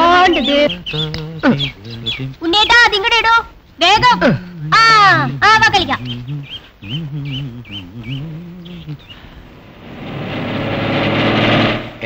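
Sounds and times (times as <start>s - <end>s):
birds chirping: 0.0s - 12.0s
truck engine approaching: 4.3s - 12.0s.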